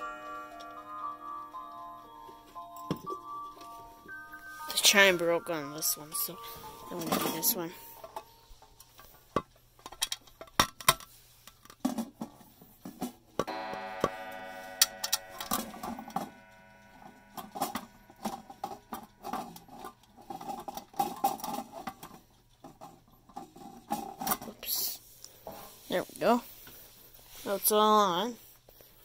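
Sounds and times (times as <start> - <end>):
clock chime strike: 0.0 - 8.5, 13.5 - 20.2
clock handling clicks and knocks: 13.4 - 22.1.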